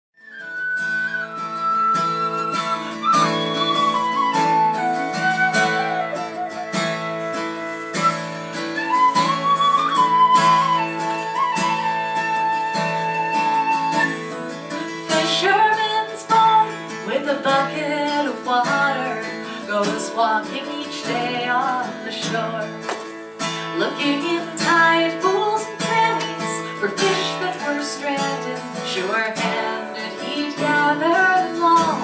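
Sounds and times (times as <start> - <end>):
end-blown whistle folk melody: 0.2 - 15.3
strummed acoustic guitar: 0.2 - 32.0.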